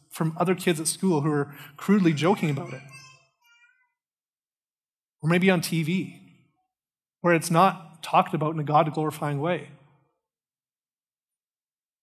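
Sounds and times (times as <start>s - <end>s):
man's voice: 0.0s - 2.9s, 5.2s - 6.2s, 7.2s - 9.8s.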